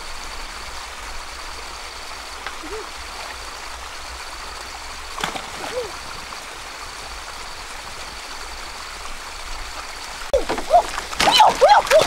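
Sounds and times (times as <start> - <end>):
small waterfall spilling: 0.0 - 12.0
stream rushing: 0.0 - 12.0.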